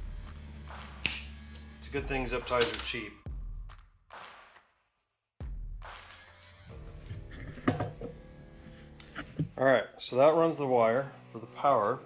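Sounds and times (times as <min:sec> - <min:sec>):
background music: 0:00.0 - 0:04.7, 0:05.4 - 0:12.0.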